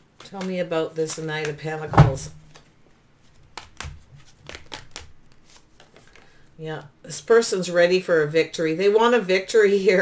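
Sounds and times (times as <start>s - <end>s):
cards being shuffled: 0.1s - 6.4s.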